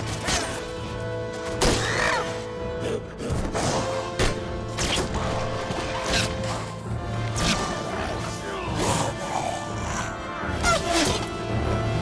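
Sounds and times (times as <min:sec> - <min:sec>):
orchestral film score: 0:00.0 - 0:12.0.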